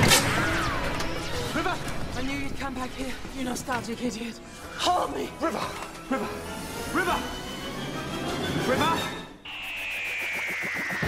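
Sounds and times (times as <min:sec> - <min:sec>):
dramatic orchestral score: 0:00.0 - 0:11.0
falling tone: 0:09.5 - 0:11.0.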